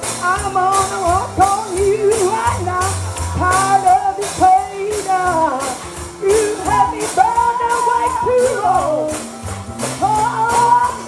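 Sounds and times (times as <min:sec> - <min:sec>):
person singing: 0:00.0 - 0:09.3
bass notes: 0:00.0 - 0:11.0
steady high percussion beat: 0:00.0 - 0:11.0.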